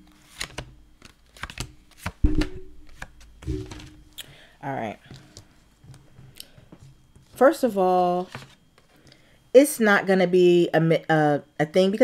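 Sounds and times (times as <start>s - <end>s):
cards being shuffled: 0.2s - 4.0s, 8.2s - 8.6s
heavy thump: 3.4s - 4.0s.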